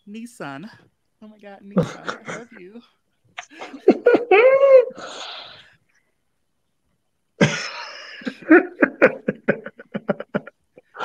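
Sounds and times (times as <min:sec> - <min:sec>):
person coughing: 0:01.8 - 0:02.6, 0:07.4 - 0:10.5.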